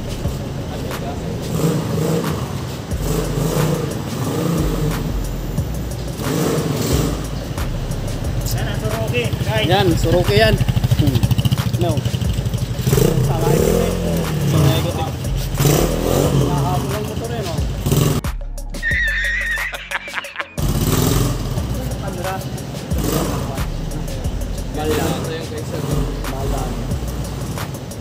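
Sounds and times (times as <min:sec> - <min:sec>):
motorcycle engine revving: 0:00.0 - 0:18.3, 0:20.6 - 0:28.0
man laughing loudly: 0:18.8 - 0:20.8.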